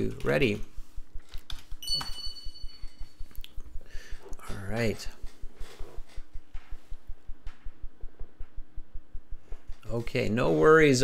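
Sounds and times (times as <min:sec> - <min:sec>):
high computer chime: 0:01.8 - 0:03.2.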